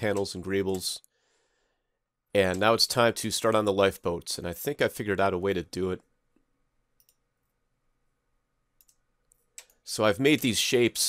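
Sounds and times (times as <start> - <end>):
faint computer mouse clicks: 7.0 - 7.2, 8.8 - 9.8.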